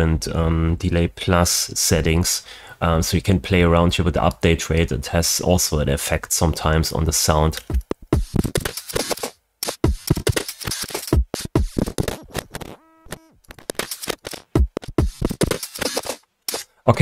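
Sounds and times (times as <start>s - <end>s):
glitchy stuttering drum loop: 7.6s - 16.6s
buzzy pitched tone: 9.8s - 13.7s.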